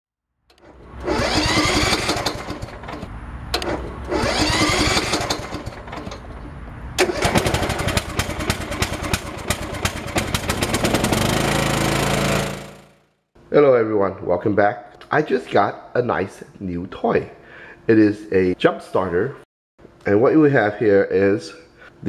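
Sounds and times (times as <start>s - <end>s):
electric starter whine: 0.5s - 13.1s
lawn mower engine running: 0.5s - 13.1s.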